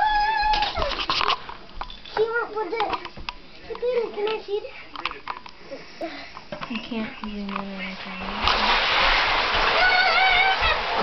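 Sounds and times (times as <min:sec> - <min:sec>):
child squealing: 0:00.0 - 0:00.9, 0:09.7 - 0:11.0.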